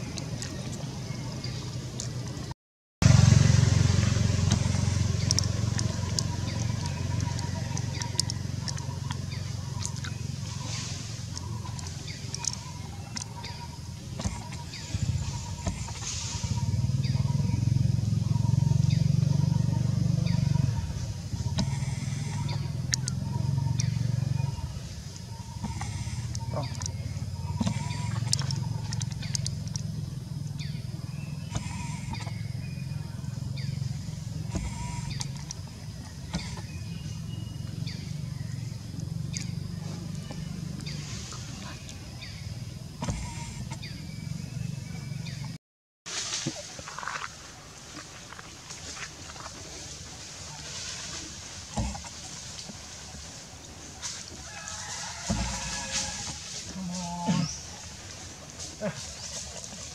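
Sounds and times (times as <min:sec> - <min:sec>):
low hum: 0:00.0 - 0:45.6.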